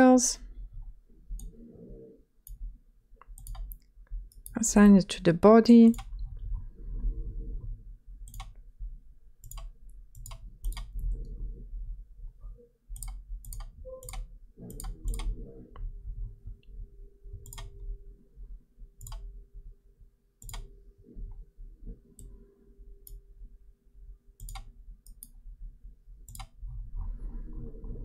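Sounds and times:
low hum: 0.0s - 28.0s
computer mouse clicking: 1.4s - 1.6s, 2.4s - 2.6s, 3.2s - 4.6s, 5.9s - 6.2s, 8.2s - 8.6s, 9.4s - 11.2s, 12.9s - 15.4s, 17.4s - 17.8s, 19.0s - 19.3s, 20.4s - 20.7s, 23.0s - 23.2s, 24.4s - 25.4s, 26.2s - 26.6s.

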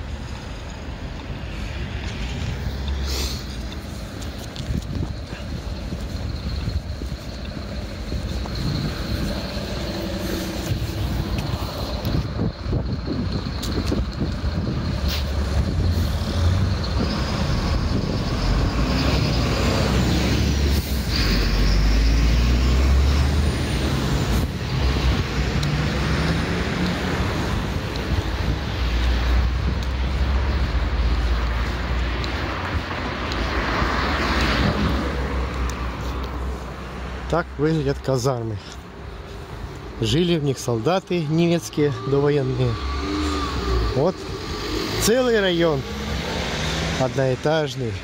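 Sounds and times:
street traffic passing: 0.0s - 48.0s
truck engine and tyre rumble: 0.0s - 48.0s.

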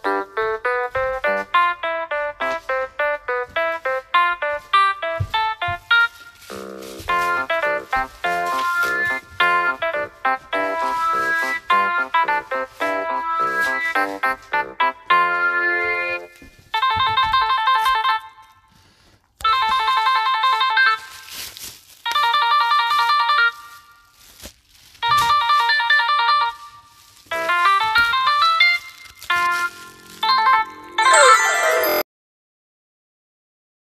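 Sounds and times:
rising keyboard tune: 0.0s - 18.5s, 27.3s - 32.1s
electronic trilling telephone ring: 30.3s - 32.1s.

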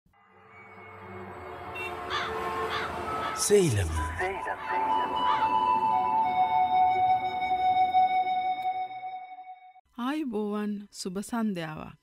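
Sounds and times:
background music: 0.1s - 12.0s
bird calls: 4.0s - 6.1s.

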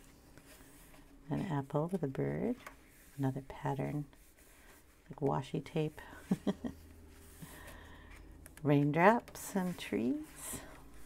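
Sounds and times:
woman laughing softly: 6.0s - 7.7s.

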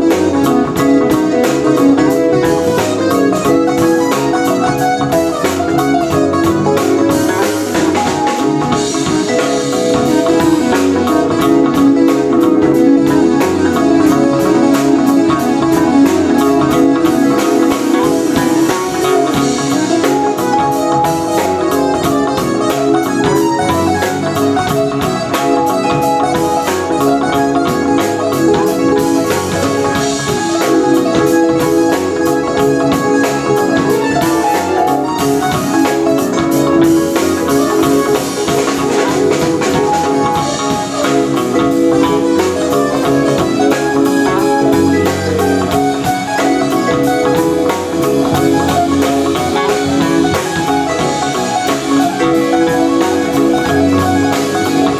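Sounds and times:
drum kit cymbal beat: 0.0s - 54.9s
electric bass: 0.0s - 54.9s
electric guitar: 0.0s - 54.9s
electric keyboard: 0.0s - 54.9s
vibraphone mallet line: 0.0s - 54.9s.

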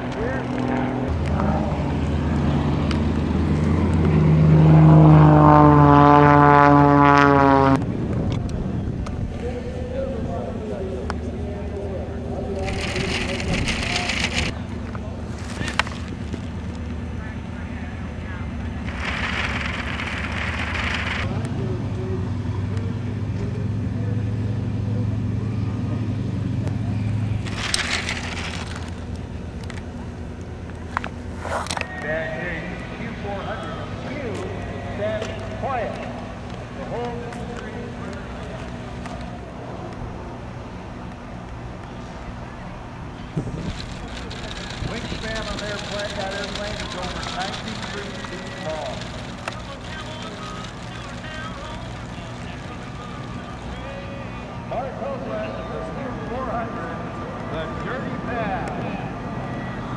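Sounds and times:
low engine hum: 0.0s - 59.9s
indistinct voices: 41.9s - 59.7s.

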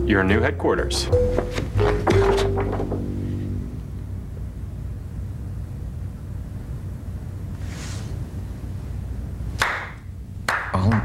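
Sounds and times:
low steady hum: 0.0s - 11.0s
sharp clap: 9.6s - 11.0s.

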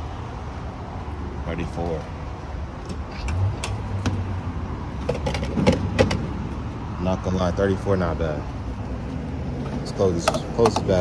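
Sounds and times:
handling clicks and knocks: 5.0s - 6.3s, 10.1s - 11.0s.

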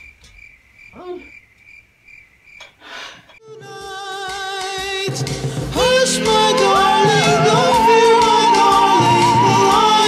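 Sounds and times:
music with singing: 3.4s - 10.0s.

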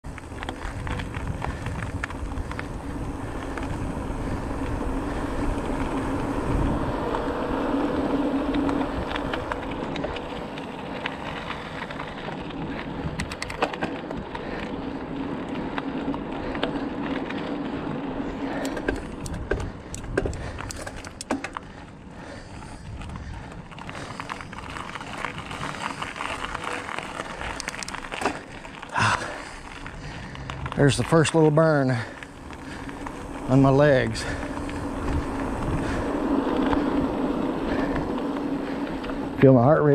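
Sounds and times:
low hum: 0.0s - 39.4s
bicycle tyres on rough asphalt: 0.0s - 39.9s
bike clicks and rattles: 0.0s - 39.9s
wind on microphone: 0.4s - 7.3s, 32.7s - 38.1s.

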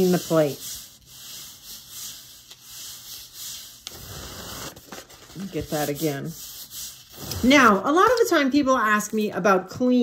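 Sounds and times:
hand rubbing paper on plate: 0.0s - 8.3s.

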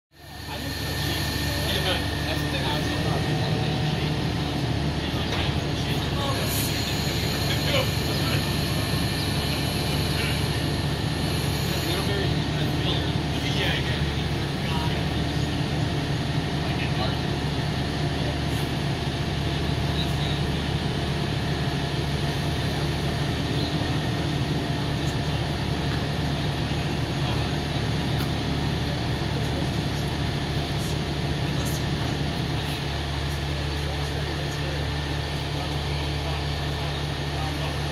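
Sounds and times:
diesel engine running: 0.1s - 37.9s
faint voices: 0.2s - 37.9s.

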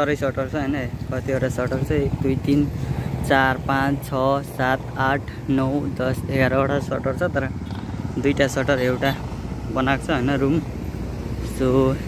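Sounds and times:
man talking: 0.0s - 10.7s, 11.4s - 12.0s
vehicle engine humming: 0.0s - 12.0s.

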